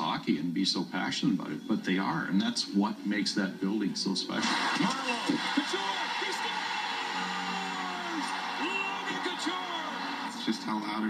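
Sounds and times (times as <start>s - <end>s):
crowd roar of many voices: 4.4s - 10.9s
crowd shouts: 4.6s - 10.6s.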